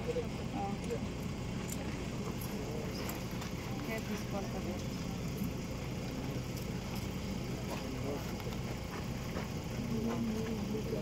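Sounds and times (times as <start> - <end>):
group of people talking: 0.0 - 11.0
steady low hum: 0.0 - 11.0.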